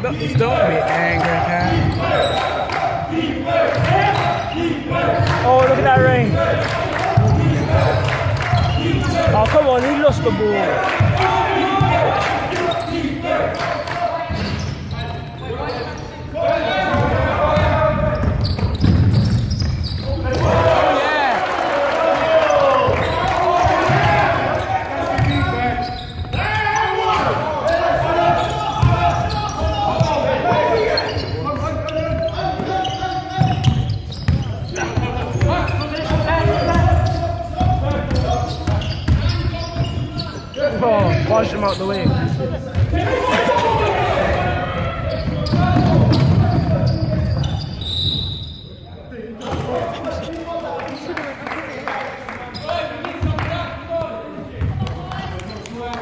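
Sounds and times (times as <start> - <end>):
players' voices and shouts: 0.0 - 56.0
basketball bouncing on wooden floor: 16.9 - 19.8.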